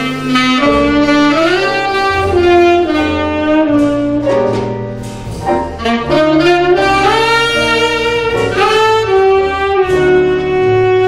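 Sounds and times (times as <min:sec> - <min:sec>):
tenor saxophone jazz melody: 0:00.0 - 0:11.0
upright bass low notes: 0:00.0 - 0:11.0.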